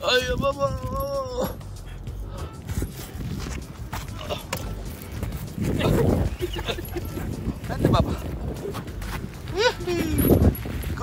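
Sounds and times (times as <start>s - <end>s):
wind on microphone: 2.3s - 11.0s
footsteps on rock: 2.6s - 11.0s.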